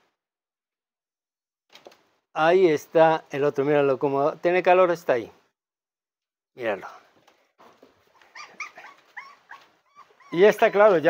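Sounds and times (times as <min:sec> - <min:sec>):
puppies whimpering: 0:08.1 - 0:11.0.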